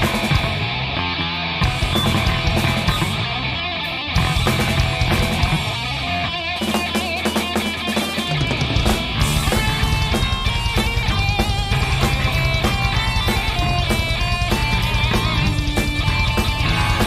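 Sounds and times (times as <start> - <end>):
bass guitar: 0.0 - 17.0
distorted electric guitars: 0.0 - 17.0
drum kit: 0.0 - 17.0.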